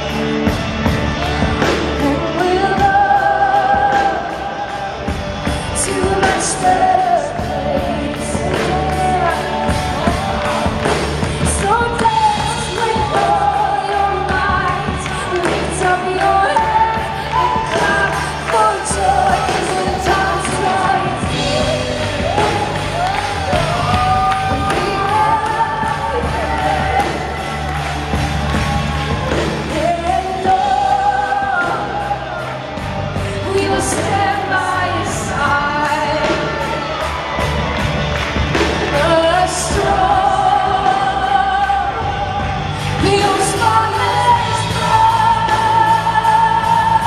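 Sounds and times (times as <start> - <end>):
band playing worship music: 0.0 - 47.0
drums keeping the beat: 0.0 - 47.0
steady bass line: 0.0 - 47.0
woman singing: 1.2 - 37.3, 38.7 - 47.0.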